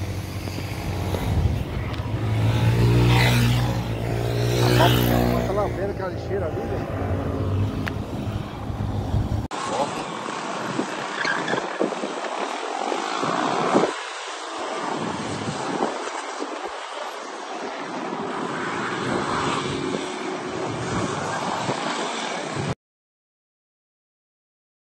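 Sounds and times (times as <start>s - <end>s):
motorcycle engines revving: 0.0s - 22.8s.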